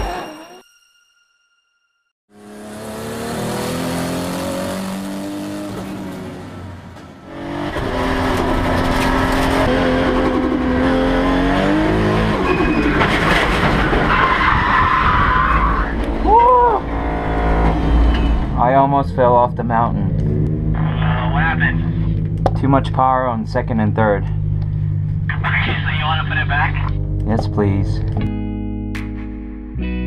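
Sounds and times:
race car engine revving: 0:02.3 - 0:28.2
tyres squealing and skidding: 0:12.2 - 0:18.6.

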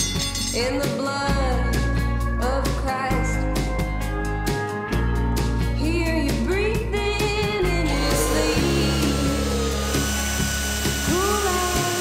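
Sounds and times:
background music: 0:00.0 - 0:12.0
drill boring through steel: 0:07.8 - 0:12.0.

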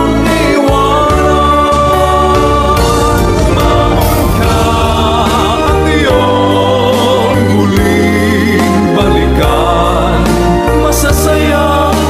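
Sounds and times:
backing instruments and bass: 0:02.3 - 0:08.0.

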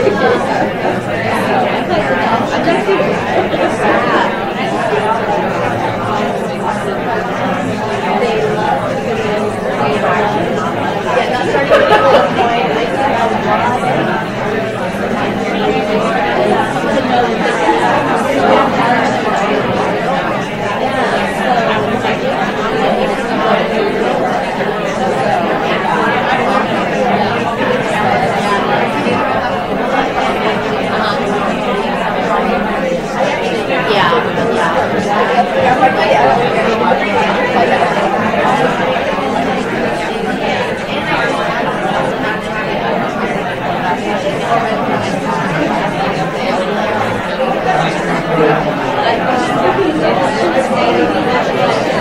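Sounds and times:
hubbub of overlapping conversations: 0:00.0 - 0:52.0.

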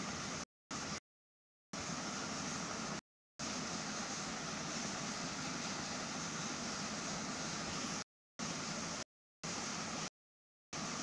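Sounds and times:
steady background hiss: 0:01.8 - 0:10.1.

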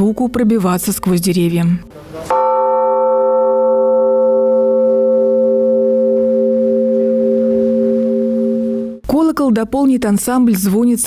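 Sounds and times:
church bell ringing: 0:02.3 - 0:09.0.

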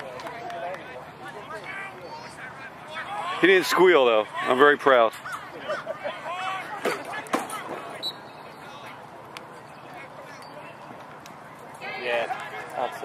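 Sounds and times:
voices calling out: 0:00.0 - 0:13.0.

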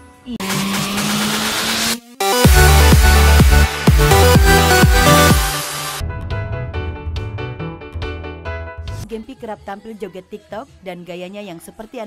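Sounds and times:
rising whoosh: 0:03.6 - 0:09.0.

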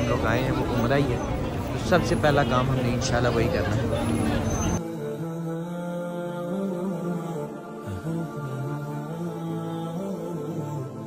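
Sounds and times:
person chanting long held notes: 0:04.8 - 0:11.0.

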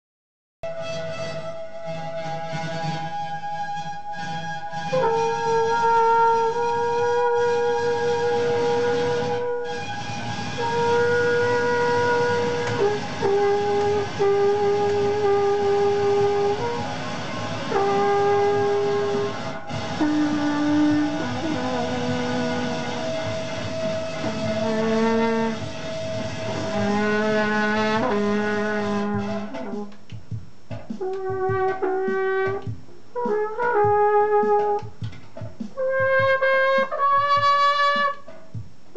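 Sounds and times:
french horn long notes: 0:00.7 - 0:30.0
steady background drone: 0:07.5 - 0:33.1.

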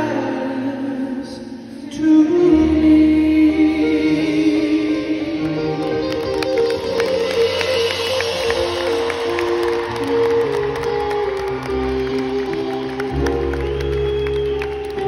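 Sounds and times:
electric guitar sustained notes: 0:02.6 - 0:15.0
rock band playing live: 0:05.4 - 0:15.0
crowd noise: 0:05.5 - 0:15.0.

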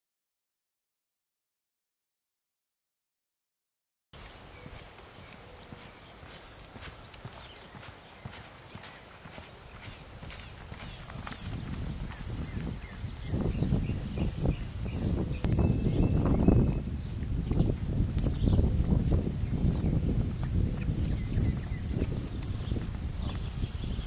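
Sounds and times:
horse hoofbeats: 0:04.2 - 0:14.4, 0:15.0 - 0:24.0.

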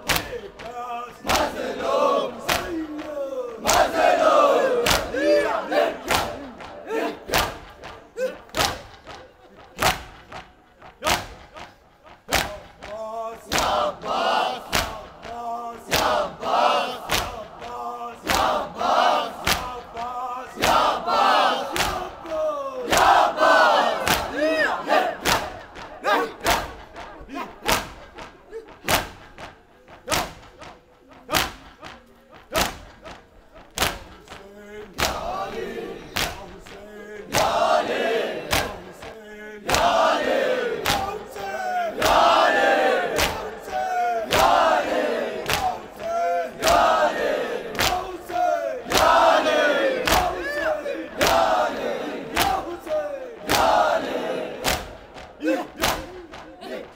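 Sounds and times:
crowd chanting cries: 0:00.0 - 0:56.9
crowd slapping chests: 0:00.0 - 0:56.9.

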